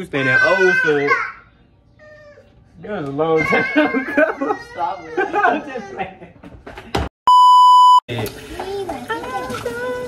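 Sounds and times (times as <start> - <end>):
high-pitched censor bleep: 7.3 - 8.0.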